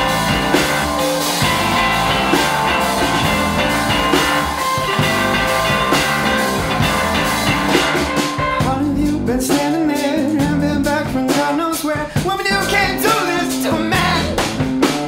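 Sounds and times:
wavering melody line: 0.0 - 8.7
drum kit: 0.0 - 15.0
electric guitar: 0.0 - 15.0
keyboard: 0.0 - 15.0.

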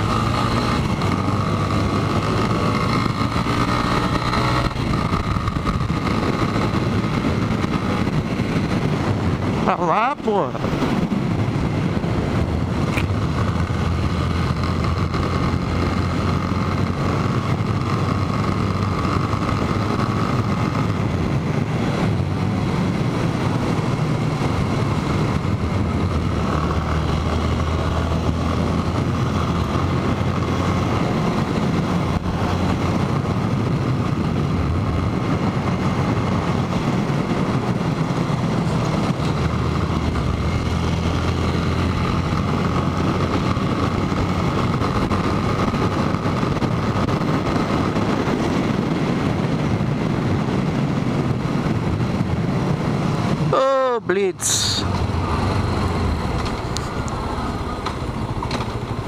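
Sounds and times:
motorcycle engine running: 0.0 - 59.0
wind rushing over microphone: 0.0 - 59.0.

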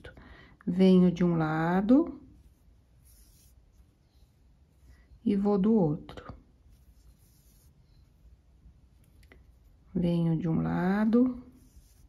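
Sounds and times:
needle stitching through fabric: 2.4 - 5.0.

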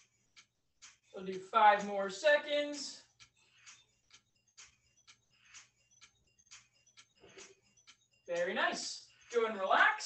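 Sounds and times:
faint even ticking: 0.0 - 10.0.

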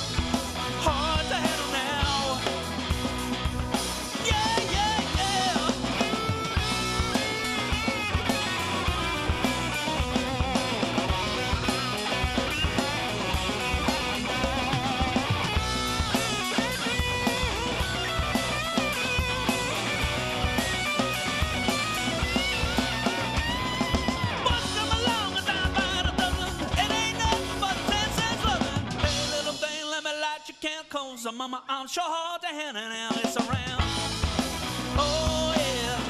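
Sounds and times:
electric guitar bending notes: 0.0 - 29.2
drums: 0.0 - 36.0.

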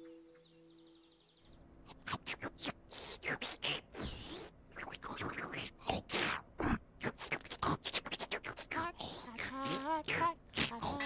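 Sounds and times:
sucking and snuffling sounds: 1.9 - 11.0.

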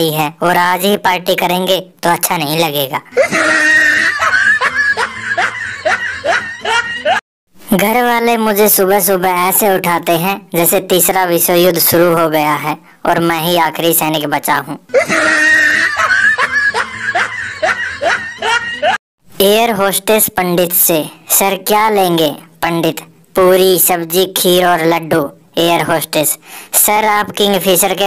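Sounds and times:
person giggling: 3.1 - 7.2, 14.9 - 19.0
person laughing in short bursts: 3.1 - 7.2, 14.9 - 19.0.

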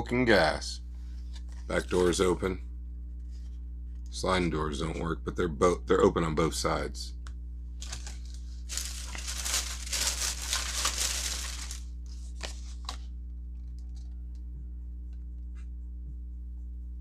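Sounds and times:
plastic packaging crinkling: 7.8 - 13.0.

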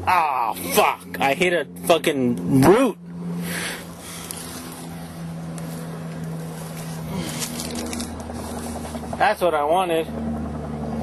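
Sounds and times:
distant motor hum: 0.0 - 11.0.

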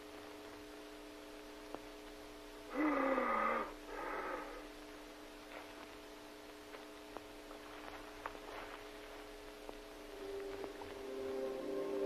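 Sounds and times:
faint steady hum: 0.0 - 12.0
man groaning hoarsely: 2.7 - 4.6.

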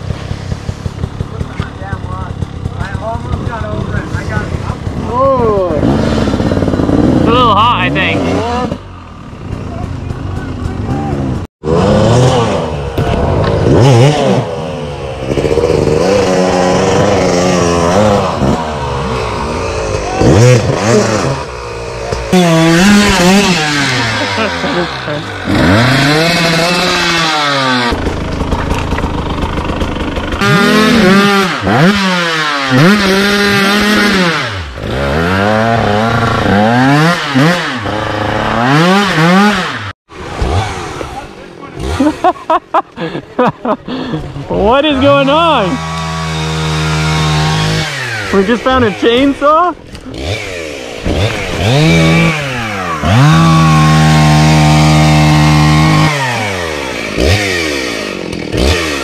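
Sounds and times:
dirt bike engines revving: 0.0 - 59.0.

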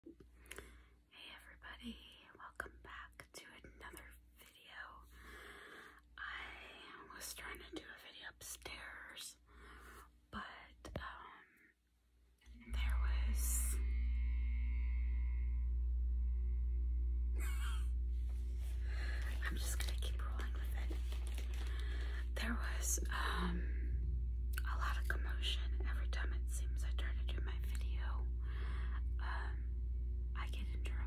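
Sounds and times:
steady low hum with faint tones: 0.0 - 31.0
woman whispering: 1.1 - 5.1, 6.2 - 9.4, 10.3 - 11.7, 12.4 - 14.3, 18.8 - 23.9, 24.6 - 28.3, 28.9 - 29.6, 30.3 - 31.0.

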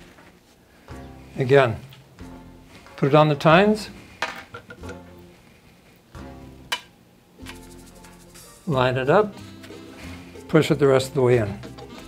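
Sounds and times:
quiet instrumental music: 0.0 - 12.0.

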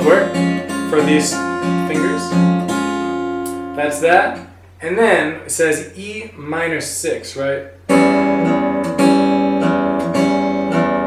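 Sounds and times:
finger-picked acoustic guitar: 0.0 - 6.5, 7.6 - 11.0.

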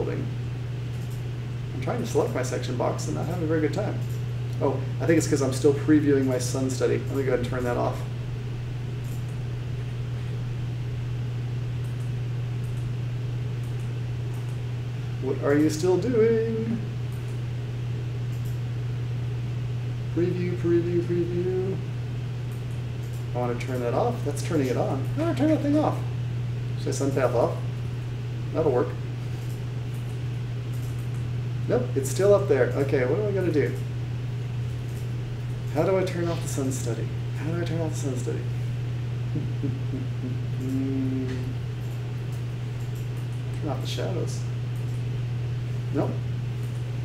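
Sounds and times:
low electrical hum: 0.0 - 47.0
man speaking: 1.8 - 4.0, 4.6 - 8.1, 15.2 - 16.9, 20.1 - 21.9, 23.3 - 26.2, 28.5 - 29.0, 31.7 - 33.8, 35.7 - 38.5, 39.4 - 41.6.

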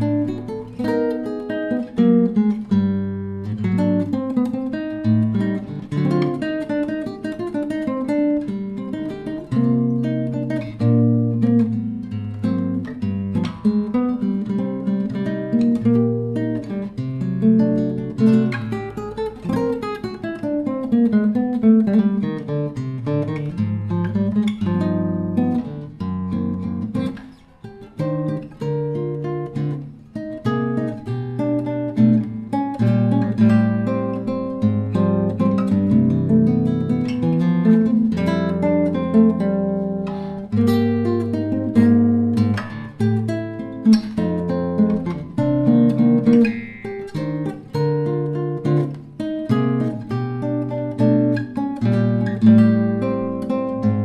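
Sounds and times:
solo classical guitar: 0.0 - 54.0.

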